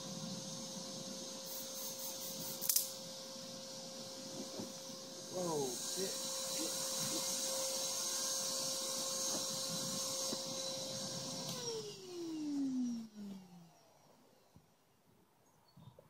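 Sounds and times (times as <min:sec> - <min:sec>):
electric blower whining: 0:00.0 - 0:14.7.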